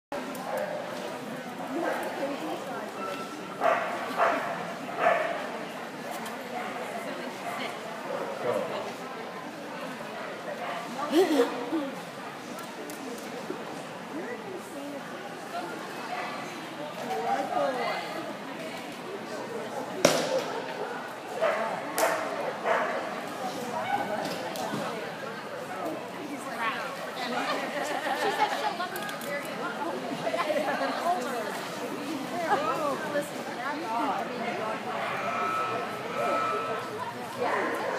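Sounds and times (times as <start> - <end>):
people talking indistinctly: 1.4 - 37.9.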